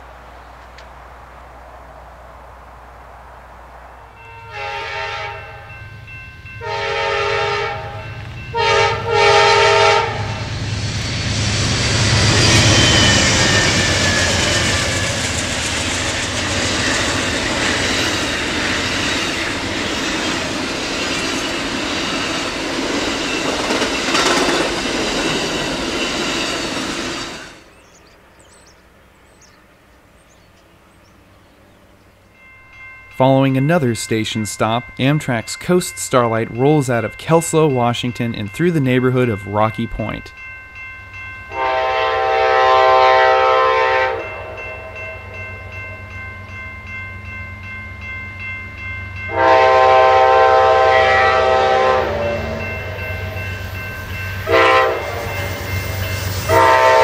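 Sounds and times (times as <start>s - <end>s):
train horn: 4.0s - 5.8s, 6.6s - 10.5s, 41.5s - 45.3s, 49.3s - 53.3s, 54.4s - 57.0s
train wheels rushing on rail: 4.1s - 28.7s, 48.6s - 57.0s.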